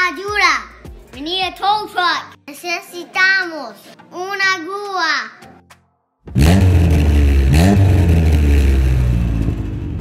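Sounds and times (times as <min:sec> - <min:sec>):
deep engine revving: 0:06.3 - 0:10.0.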